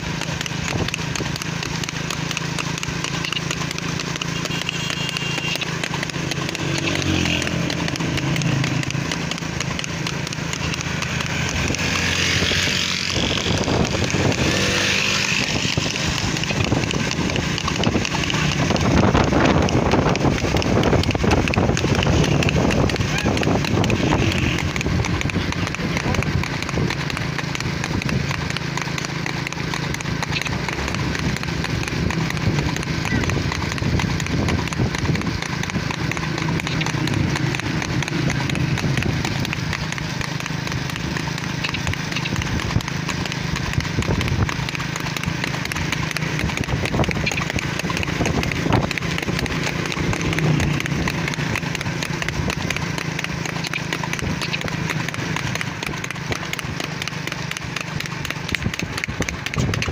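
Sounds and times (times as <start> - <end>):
hooves clip-clopping on pavement: 0.0 - 59.9.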